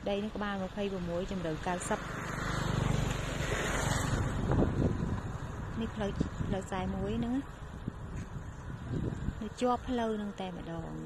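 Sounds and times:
road noise: 0.0 - 11.0
vehicle engine passing: 0.8 - 9.6.

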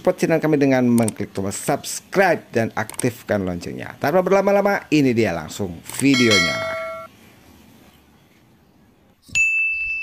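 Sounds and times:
bright bell-like ding: 6.1 - 7.1.

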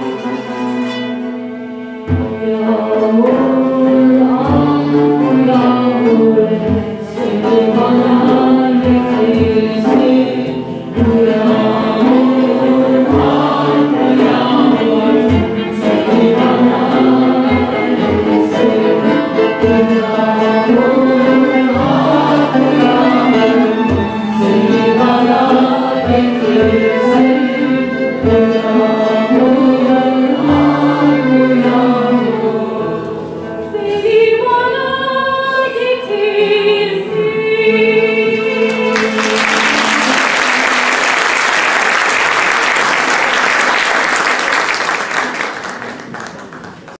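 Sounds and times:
choir singing: 0.0 - 45.6
small instrumental ensemble: 0.0 - 46.9.

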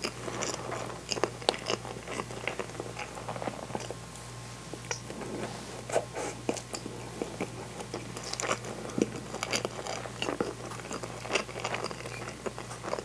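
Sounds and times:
chewing and biting food: 0.0 - 4.0, 6.4 - 13.0.

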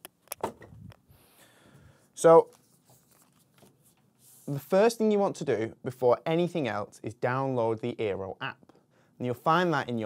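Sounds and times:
faint handling noise: 2.2 - 4.6
paper rustling: 2.4 - 4.6.

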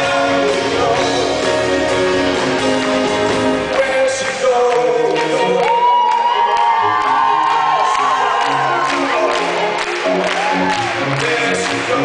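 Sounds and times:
live pop band playing: 0.0 - 12.0
audience cheering and whooping: 5.2 - 11.6.

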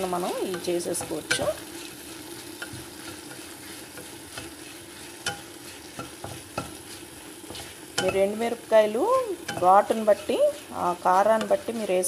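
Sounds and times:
chillies sizzling in oil: 0.0 - 12.0
spatula knocking against pan: 5.2 - 6.8, 9.4 - 9.8.

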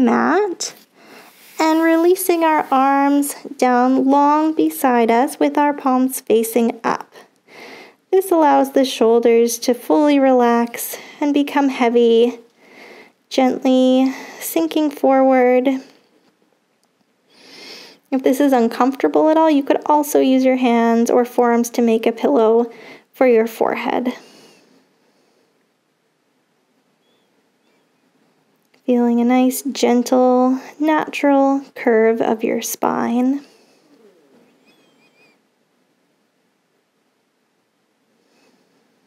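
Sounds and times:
soft breath in: 0.8 - 1.6, 7.5 - 8.0, 12.6 - 13.2, 22.7 - 23.1, 38.2 - 39.0
bird chirping: 27.0 - 28.1, 33.8 - 35.4.

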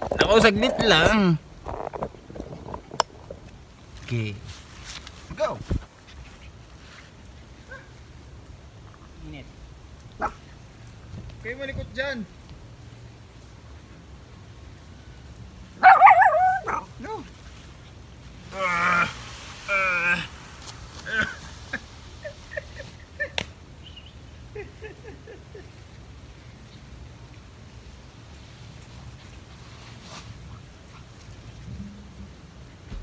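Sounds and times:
dogs yipping and whining: 15.8 - 16.9.

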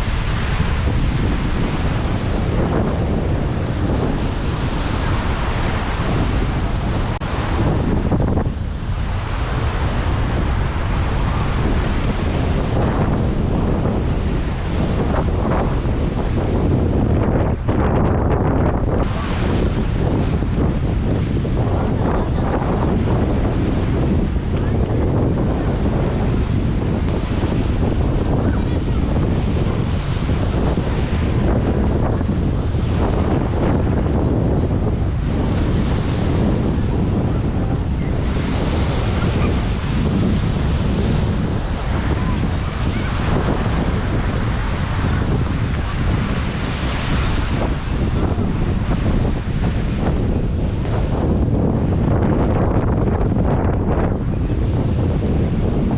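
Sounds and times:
waves washing on shore: 0.0 - 55.9
wind buffeting microphone: 0.0 - 55.9.

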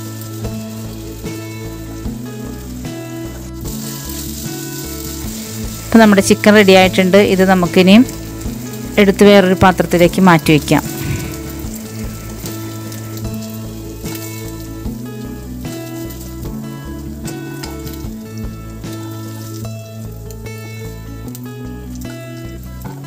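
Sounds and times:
background music: 0.0 - 23.0
chicken sizzling in hot oil: 0.0 - 23.0.

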